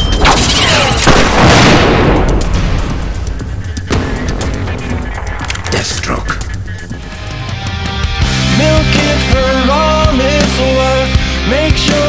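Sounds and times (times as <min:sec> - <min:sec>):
loud blast: 0:00.2 - 0:05.3
dramatic music: 0:00.7 - 0:12.0.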